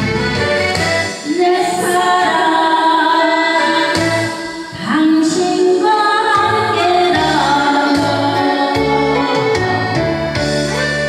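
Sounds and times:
instrumental backing track: 0.0 - 11.0
woman singing pop song: 1.2 - 9.8.

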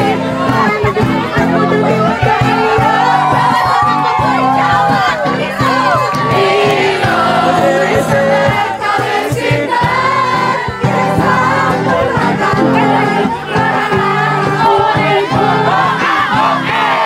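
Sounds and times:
group singing over steady beat: 0.0 - 17.0.

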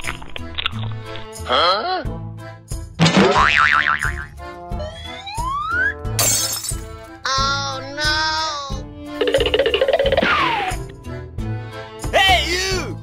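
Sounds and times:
background music: 0.0 - 13.0
wobbling boing: 3.3 - 4.3.

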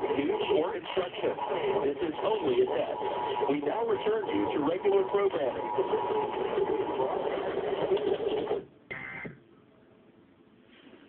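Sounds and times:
loud television broadcast sound: 0.0 - 9.4.

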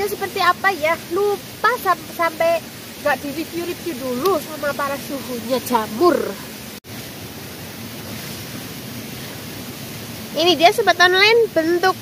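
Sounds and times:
rushing hiss of background noise: 0.0 - 12.0.

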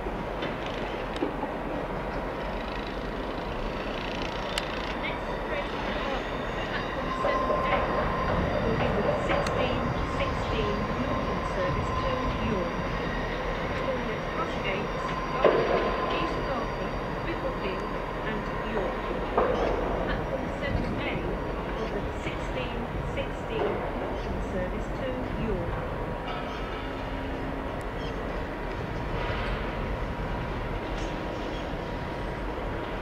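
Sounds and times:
diesel train running: 0.0 - 33.0.

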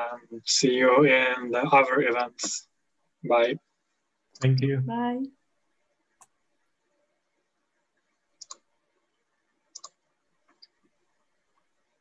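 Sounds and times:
faint sharp clicks: 8.4 - 8.7, 9.7 - 10.8.

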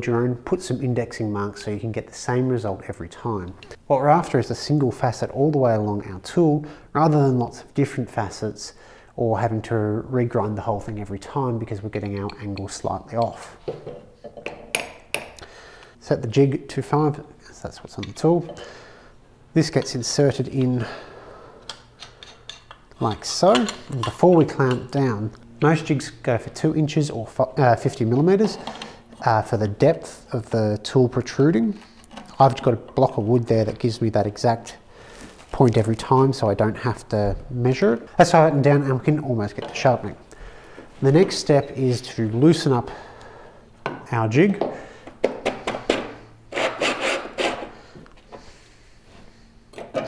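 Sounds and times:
sharp knocks and clicks: 12.0 - 15.4.

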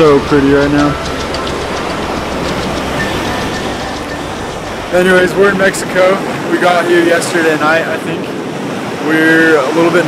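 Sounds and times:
ocean surf: 0.0 - 10.0
wind on microphone: 0.0 - 10.0.

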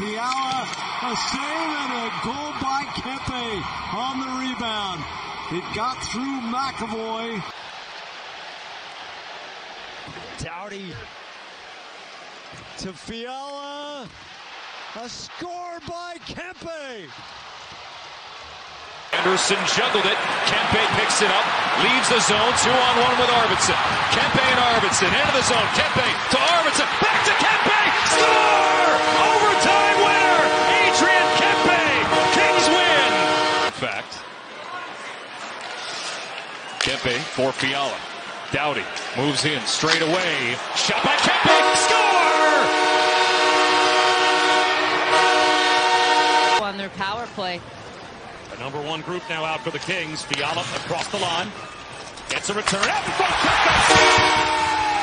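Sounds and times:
arena crowd noise: 0.0 - 55.0
ice hockey goal horn: 28.0 - 33.8, 41.5 - 46.7, 53.7 - 54.8.

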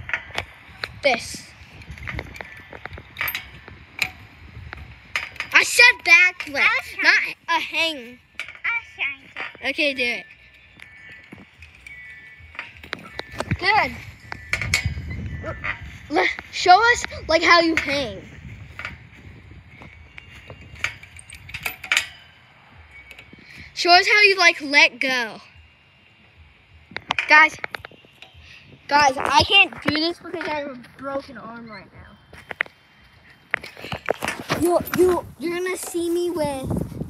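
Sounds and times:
metal chains clinking: 0.0 - 19.0, 19.7 - 24.7
metal rings creaking and clicking: 0.0 - 37.0.

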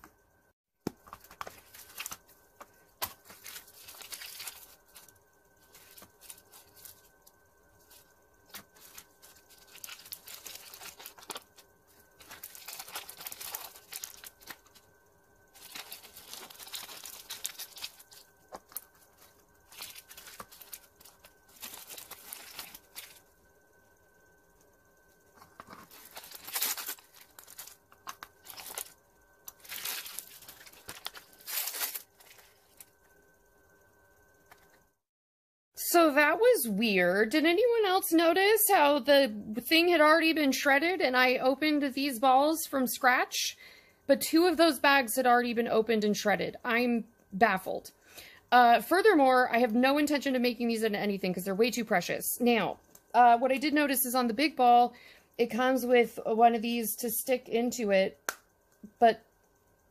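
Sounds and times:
plastic wrappers crinkling: 1.0 - 14.9, 15.5 - 23.3, 25.4 - 33.1.

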